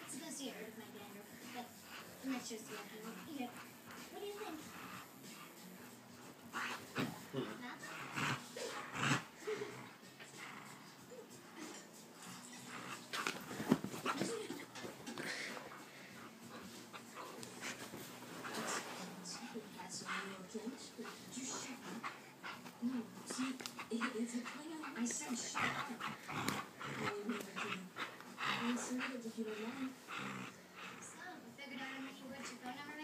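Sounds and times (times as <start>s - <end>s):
puppy vocalizing: 1.4s - 33.0s.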